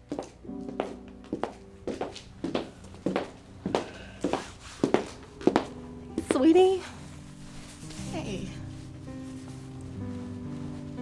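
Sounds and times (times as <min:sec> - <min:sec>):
child footsteps on wooden floor: 0:00.0 - 0:06.7.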